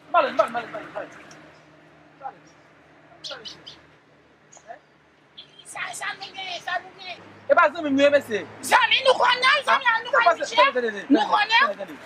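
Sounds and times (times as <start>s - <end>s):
birds chirping: 0.0s - 10.8s.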